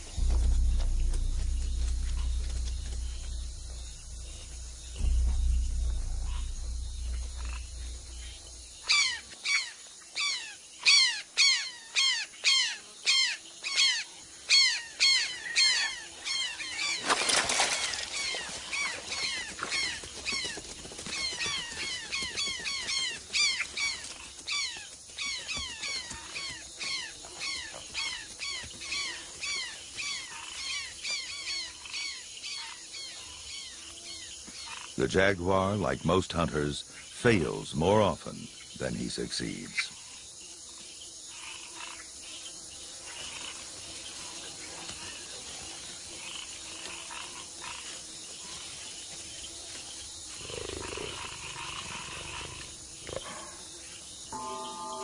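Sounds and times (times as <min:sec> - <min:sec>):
low rumble: 0:00.0 - 0:09.1
high insect hum: 0:00.0 - 0:55.0.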